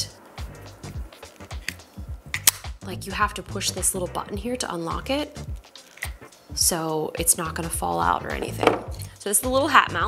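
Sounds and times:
music with steady bass line: 0.0s - 10.0s.

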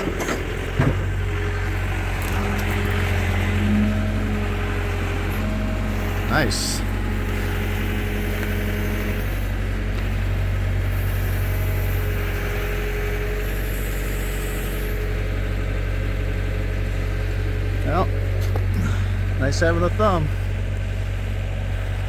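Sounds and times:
diesel engine running: 0.0s - 22.0s
hydraulics working: 0.0s - 22.0s.

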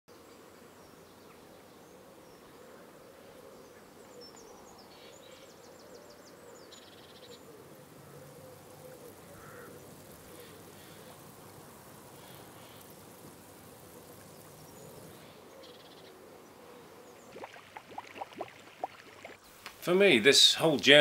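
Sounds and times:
insect buzz: 7.5s - 16.1s.

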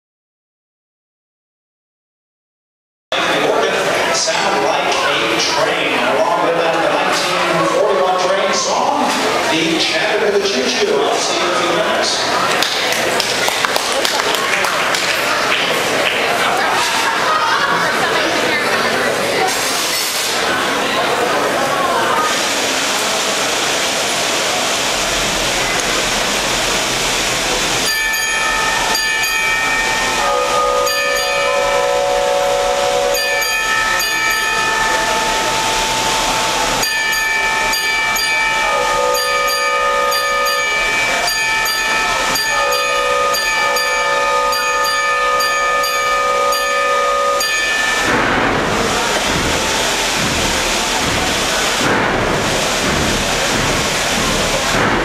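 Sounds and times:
pipe organ imitating steam train: 24.2s - 55.0s
steady hiss: 47.1s - 55.0s.

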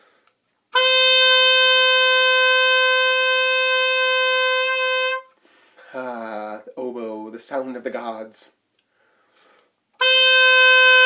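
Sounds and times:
oboe holding long note: 0.7s - 5.4s, 10.0s - 11.0s.

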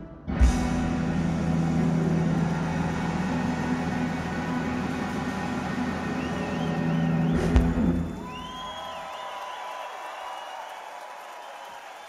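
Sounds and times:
rock band holding low note: 0.0s - 8.6s.

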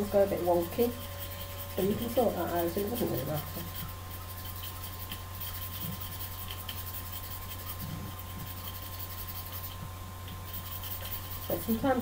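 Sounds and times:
knife scraping pencil lead: 0.1s - 9.8s, 10.4s - 12.0s.

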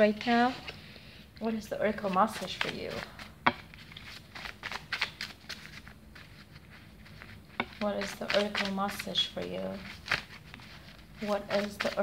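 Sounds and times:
cards shuffled by hand: 1.4s - 12.0s.

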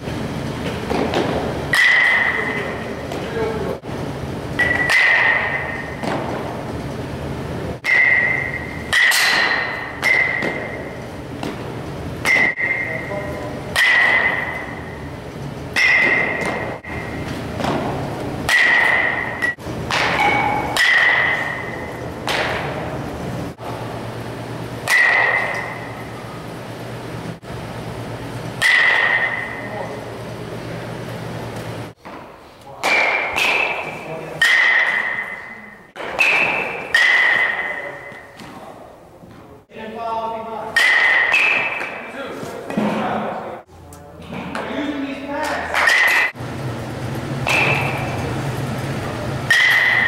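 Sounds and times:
metal bat hitting ball: 0.9s - 2.8s, 4.6s - 6.4s, 7.8s - 11.6s, 12.2s - 13.1s, 13.7s - 15.0s, 15.7s - 22.8s, 24.8s - 26.1s, 28.6s - 29.8s, 32.0s - 38.5s, 40.8s - 42.1s, 45.7s - 46.4s, 47.4s - 48.2s, 49.5s - 50.0s.

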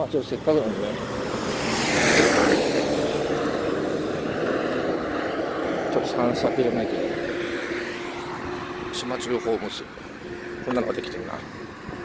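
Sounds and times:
truck driving past: 0.3s - 12.0s.

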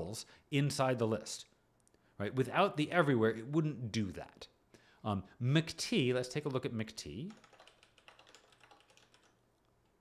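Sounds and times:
computer keyboard keystrokes: 7.3s - 10.0s.

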